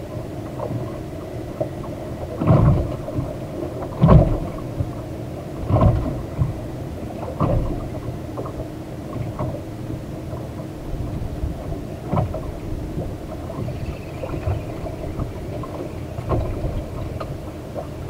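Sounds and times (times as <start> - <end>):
water slapping boat hull: 0.0 - 18.0
wind: 0.0 - 18.0
low thumps: 12.1 - 18.0.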